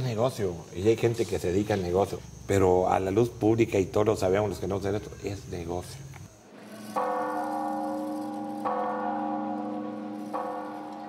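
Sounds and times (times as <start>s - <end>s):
church bell ringing: 6.8s - 11.0s.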